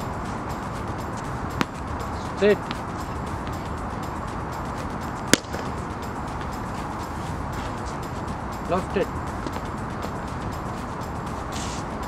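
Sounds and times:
cricket bat striking ball: 1.6 - 1.8, 2.6 - 2.8, 5.3 - 5.9.

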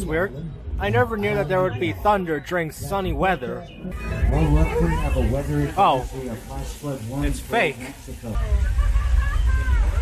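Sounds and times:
voices exclaiming: 0.0 - 10.0
deep rumble of rushing water: 3.8 - 10.0.

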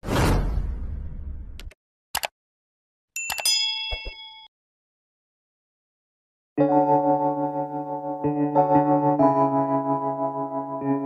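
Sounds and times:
bright bell ding: 3.2 - 4.5.

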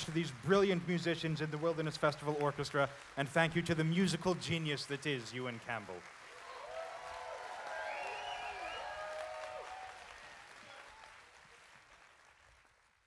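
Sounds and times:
audience applause: 0.0 - 13.0.

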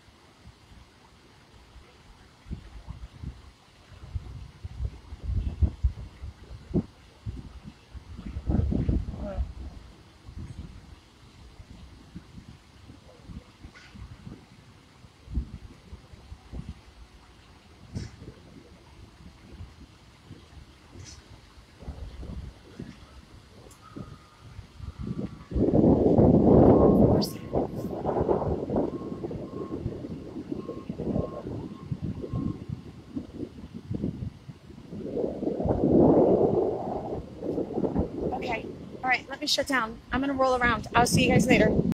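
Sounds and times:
wind buffeting microphone: 1.6 - 41.9.

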